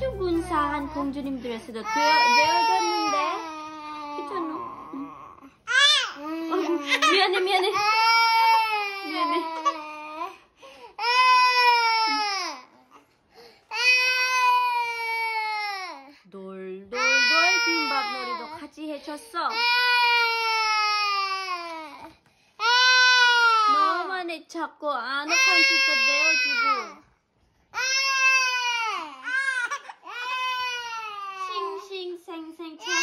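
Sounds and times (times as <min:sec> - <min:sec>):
toddler wailing: 0:01.8 - 0:10.4, 0:11.0 - 0:12.7, 0:13.7 - 0:16.1, 0:17.0 - 0:18.7, 0:19.5 - 0:24.1, 0:25.3 - 0:27.0, 0:27.8 - 0:31.9, 0:32.8 - 0:33.0.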